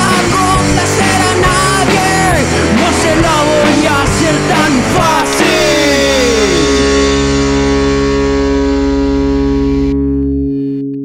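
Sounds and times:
distorted electric guitar chord: 0:00.0 - 0:11.0
deep low note: 0:05.6 - 0:11.0.

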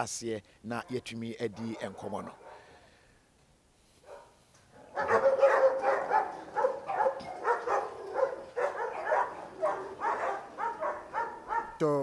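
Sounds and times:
dog barking rapidly: 0:00.8 - 0:02.6, 0:04.9 - 0:11.8.

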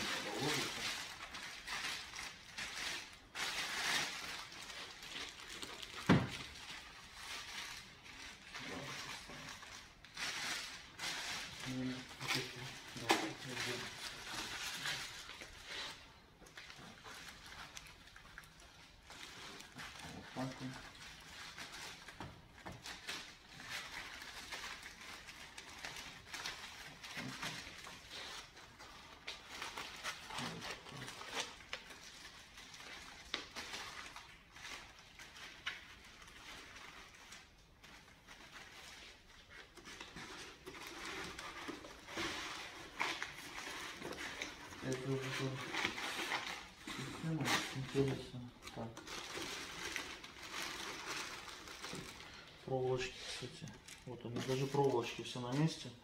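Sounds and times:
packaging rustling: 0:00.0 - 0:55.7.

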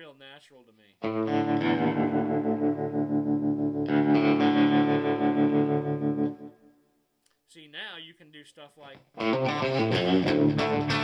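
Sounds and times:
electric guitar tremolo chords: 0:01.0 - 0:06.7, 0:09.1 - 0:11.0.

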